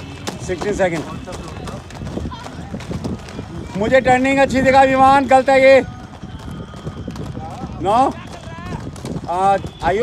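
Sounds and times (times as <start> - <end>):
roller skate wheels on asphalt: 0.0 - 10.0.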